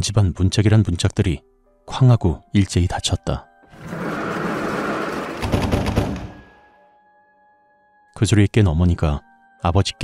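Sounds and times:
many doors slamming: 0:03.7 - 0:06.7.

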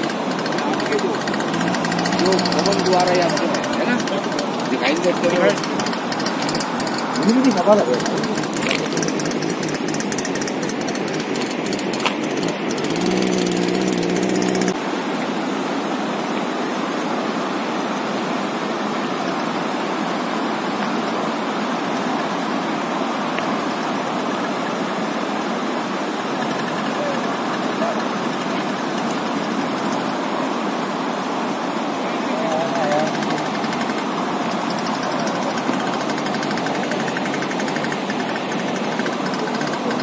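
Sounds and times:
mountain stream rushing: 0:00.0 - 0:40.0.

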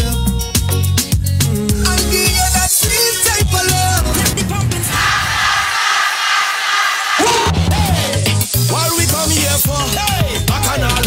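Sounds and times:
bass drum beat: 0:07.2 - 0:08.4.

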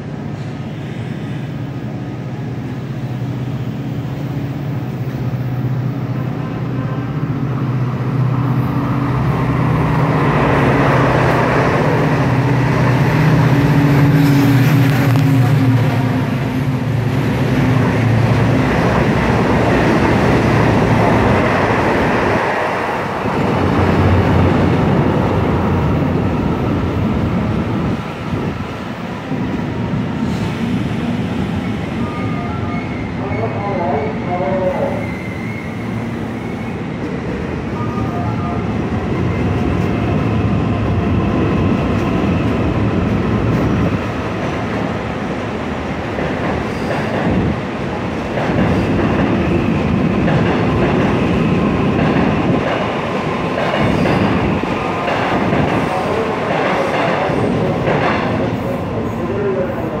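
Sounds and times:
train wheels on rails: 0:00.0 - 0:33.2, 0:38.4 - 1:00.0.

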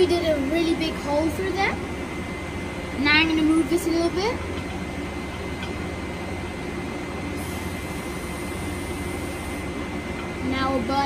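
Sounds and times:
lab equipment humming: 0:00.0 - 0:11.0.

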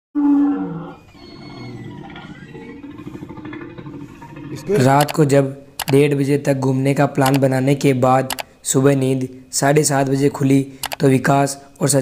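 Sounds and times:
dinosaur roar: 0:00.2 - 0:04.9.

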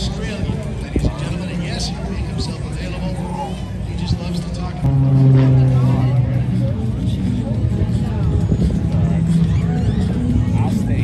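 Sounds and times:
crowd chatter: 0:00.0 - 0:11.0
propeller plane engine: 0:03.6 - 0:09.6.

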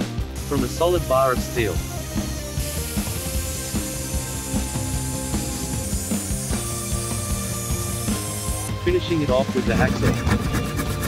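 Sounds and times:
background music: 0:00.0 - 0:11.0
angle grinder cutting steel: 0:00.4 - 0:11.0.

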